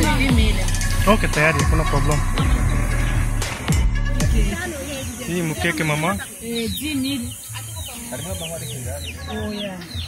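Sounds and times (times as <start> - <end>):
murmur of people talking: 0.0 - 10.0
high bird chirps: 0.7 - 10.0.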